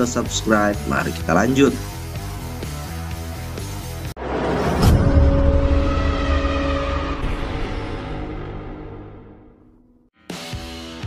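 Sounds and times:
deep rumble: 0:04.2 - 0:10.1.

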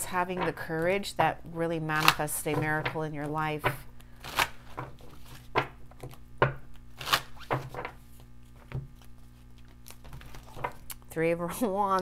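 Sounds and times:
cards being shuffled by hand: 0:02.0 - 0:11.1.

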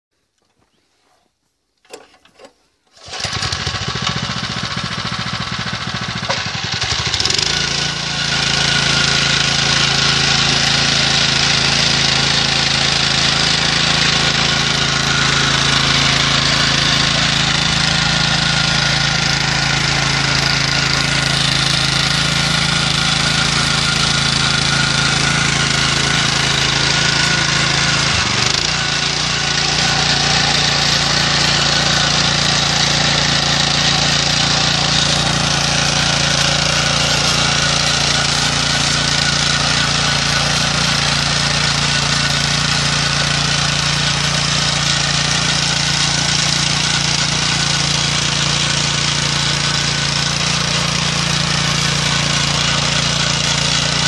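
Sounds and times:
tines churning soil: 0:01.9 - 0:54.0
power weeder engine running: 0:03.0 - 0:54.0.

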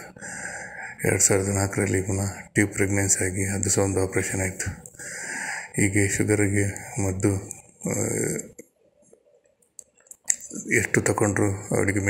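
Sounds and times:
man's voice in voice message: 0:01.0 - 0:04.8, 0:05.8 - 0:08.6, 0:10.3 - 0:12.0.

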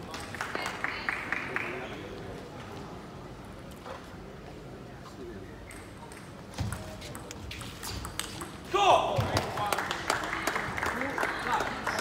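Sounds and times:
murmur of crowd: 0:00.0 - 0:07.9, 0:08.7 - 0:12.0.

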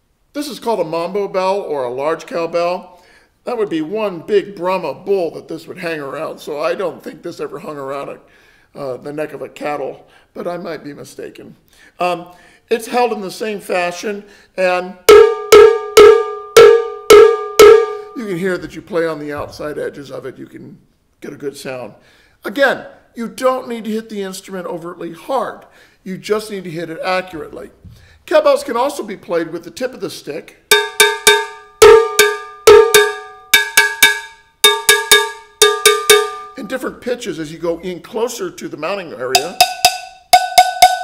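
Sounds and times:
cowbell struck with drumstick: 0:15.1 - 0:18.2, 0:30.7 - 0:36.6, 0:39.3 - 0:41.0.

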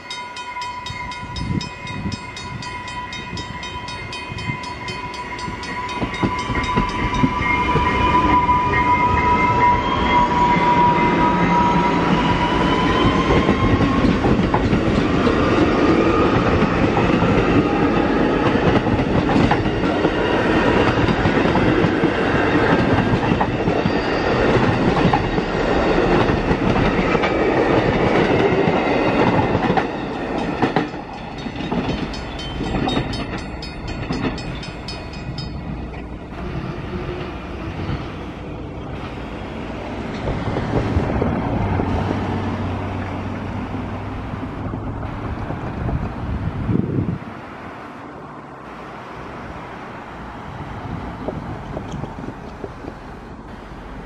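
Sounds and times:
train wheels clattering on rails: 0:01.2 - 0:38.1, 0:39.9 - 0:43.9, 0:51.1 - 0:53.4.

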